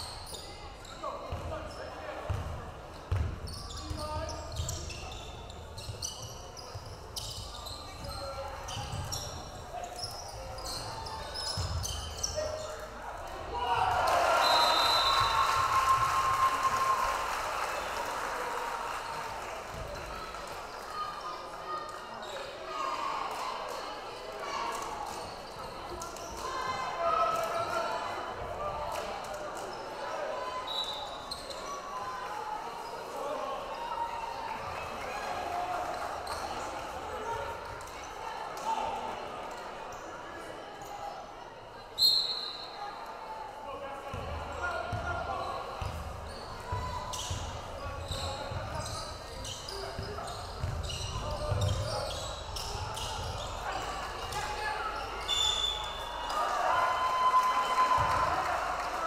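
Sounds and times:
basketball bouncing on court: 0:02.3 - 0:04.8, 0:44.1 - 0:45.2, 0:45.8 - 0:49.0, 0:50.0 - 0:53.4
crowd cheering: 0:13.4 - 0:20.6, 0:54.8 - 0:59.0
crowd chattering: 0:17.5 - 0:57.2.

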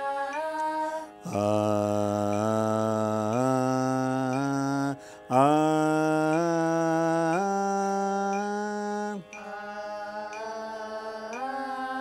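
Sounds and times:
group singing held vowel notes: 0:00.0 - 0:12.0.

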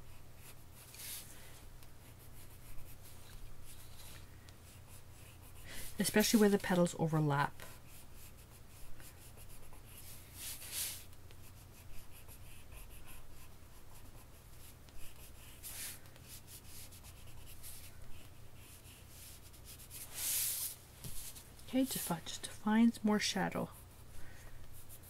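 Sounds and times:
pencil scratching on paper: 0:00.1 - 0:01.2, 0:02.0 - 0:24.1, 0:24.7 - 0:25.0.

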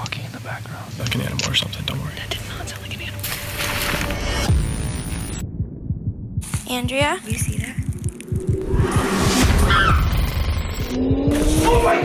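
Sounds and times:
low throbbing drone: 0:02.2 - 0:12.0
falling bass hit: 0:04.2 - 0:06.7, 0:07.6 - 0:11.8
rush of noise: 0:07.8 - 0:12.0.

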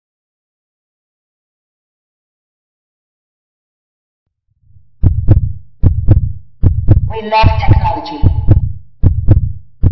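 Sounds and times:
deep heartbeat: 0:04.6 - 0:09.9.

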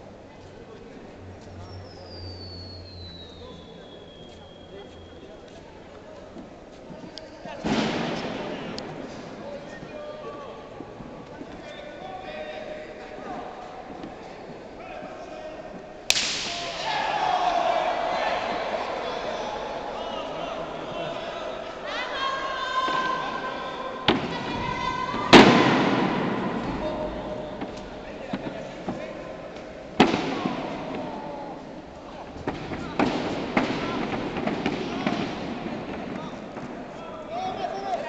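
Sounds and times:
crowd voices: 0:00.0 - 0:38.0
faint voices in a hall: 0:00.0 - 0:38.0
sharp slap-like crack: 0:16.1 - 0:16.9.

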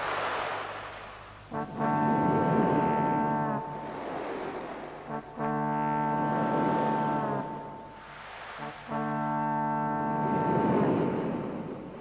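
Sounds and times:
rushing noise: 0:00.0 - 0:05.4, 0:06.2 - 0:09.0
low horn blasts: 0:01.3 - 0:12.0.

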